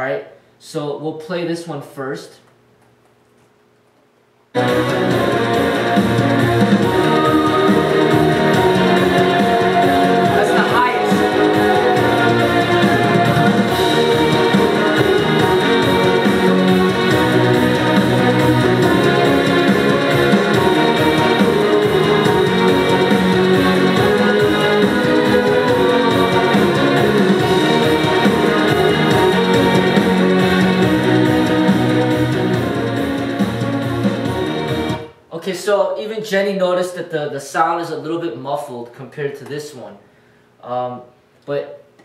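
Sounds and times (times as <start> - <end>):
muffled music from stereo: 4.6 - 35.2.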